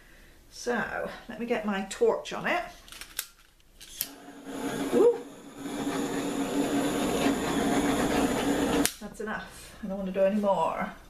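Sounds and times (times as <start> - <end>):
torch igniter clicks: 3.2 - 4.2, 8.5 - 9.1
torch flame hissing: 4.0 - 9.1.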